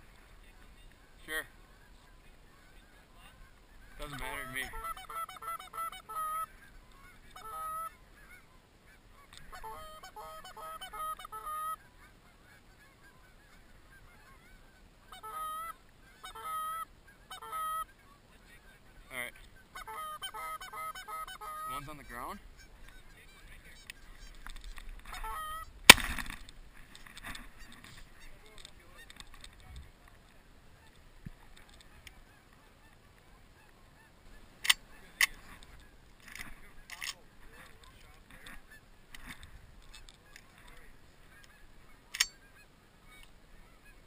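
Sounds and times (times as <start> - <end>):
goose honking: 2.6 - 24.4, 25.0 - 25.7.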